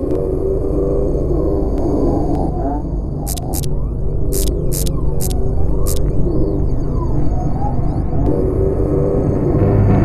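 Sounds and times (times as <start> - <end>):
low throbbing drone: 0.0 - 10.0
bursts of high static hiss: 3.3 - 3.7, 4.3 - 6.0.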